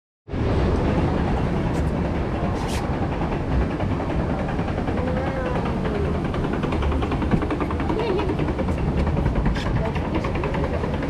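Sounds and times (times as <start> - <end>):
raft ride low rumble: 0.3 - 11.0.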